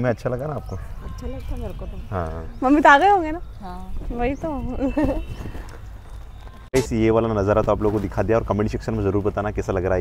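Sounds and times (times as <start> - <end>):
woman laughing: 4.7 - 5.3.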